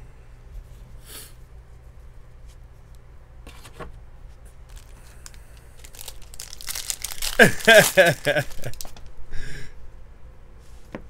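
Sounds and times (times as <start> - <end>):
foil wrapper crinkling and tearing: 4.7 - 9.1.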